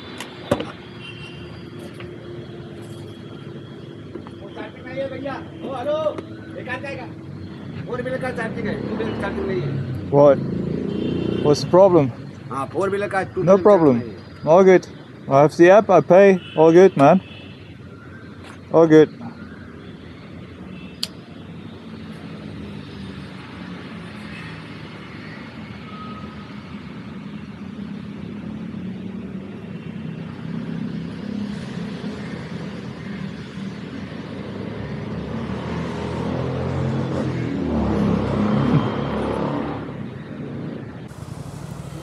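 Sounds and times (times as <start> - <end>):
road traffic rumble: 0.0 - 19.1, 19.8 - 42.0
vehicle passing close: 41.1 - 42.0.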